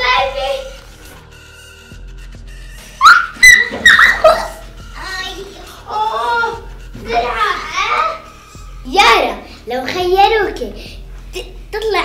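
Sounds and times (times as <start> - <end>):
girl squealing with laughter: 3.0 - 4.6.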